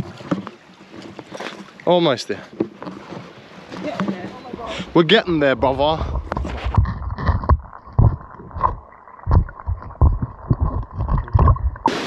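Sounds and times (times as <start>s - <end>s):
low thumps on microphone: 5.4s - 12.0s.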